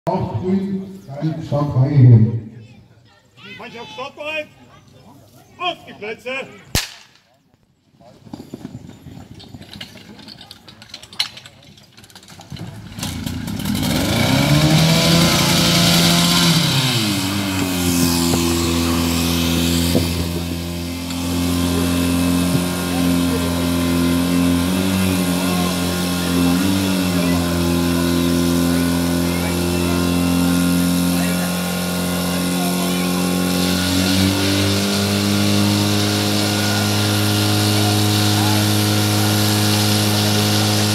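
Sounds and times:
fire pump engine revving: 11.8s - 40.9s.

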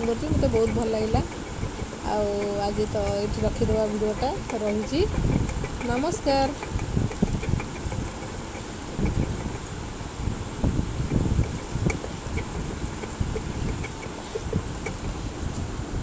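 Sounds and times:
rod knocking against pot: 0.0s - 9.7s, 10.9s - 15.1s
metal rod stirring liquid in pot: 0.0s - 9.8s, 10.6s - 15.3s.

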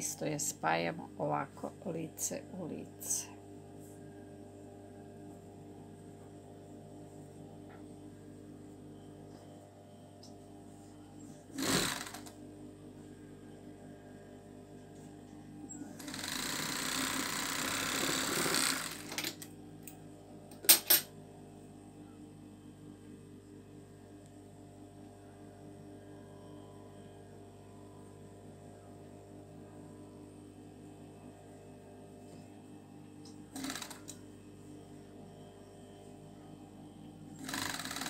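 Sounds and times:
steady low hum: 0.0s - 38.0s
overlock machine stitching: 11.6s - 12.3s, 16.0s - 19.4s, 33.6s - 34.2s, 37.4s - 38.0s.

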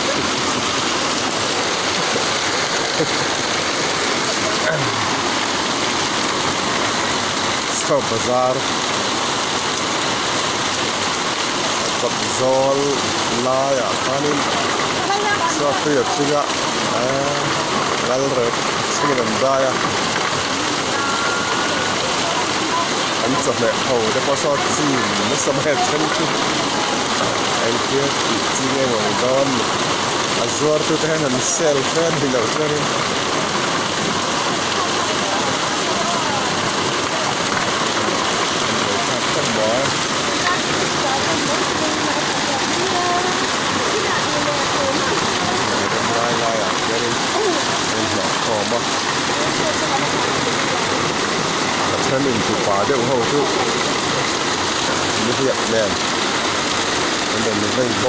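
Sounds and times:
heavy rain on tarpaulin: 0.0s - 58.0s
running water: 0.0s - 58.0s.

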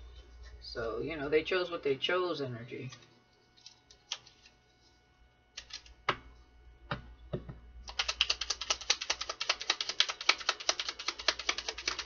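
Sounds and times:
cards being shuffled: 5.6s - 5.9s, 7.9s - 12.0s.

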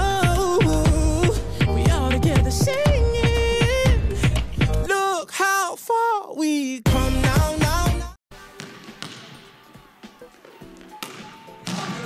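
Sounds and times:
basketball bouncing on wooden floor: 8.6s - 9.5s.

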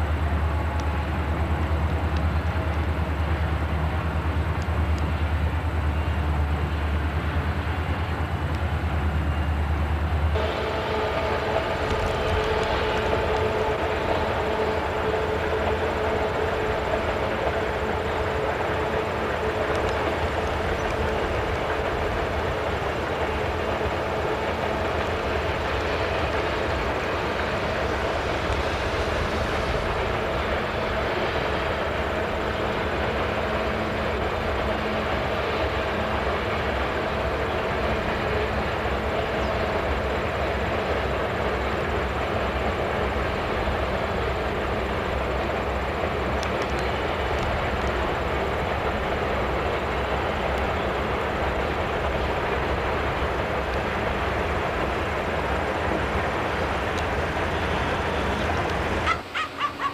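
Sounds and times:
diesel locomotive engines droning: 0.0s - 59.9s
freight train rumble: 0.0s - 59.9s.

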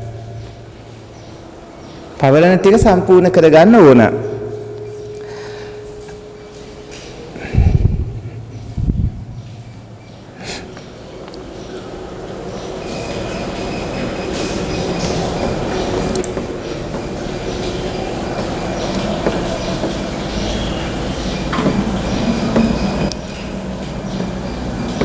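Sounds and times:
faint high whining tones: 0.0s - 25.0s
low rumble: 7.4s - 10.1s.

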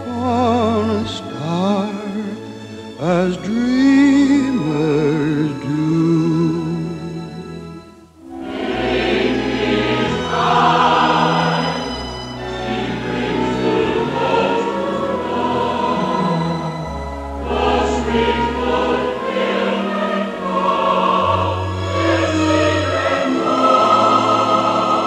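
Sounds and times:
choir singing: 8.2s - 25.0s.

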